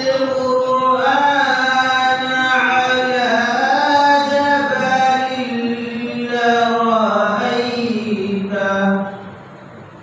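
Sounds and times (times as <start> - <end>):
man chanting melodically: 0.0 - 9.2.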